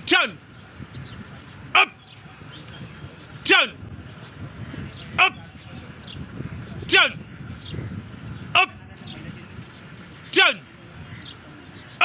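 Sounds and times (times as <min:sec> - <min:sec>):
man shouting drill calls: 0:00.0 - 0:00.4, 0:01.7 - 0:02.1, 0:03.4 - 0:03.8, 0:05.2 - 0:05.5, 0:06.9 - 0:07.2, 0:08.6 - 0:08.8, 0:10.3 - 0:10.7.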